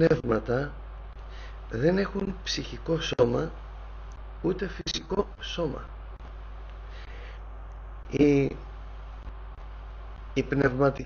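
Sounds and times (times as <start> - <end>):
background hiss: 0.0 - 11.0
steady low hum: 0.0 - 11.0.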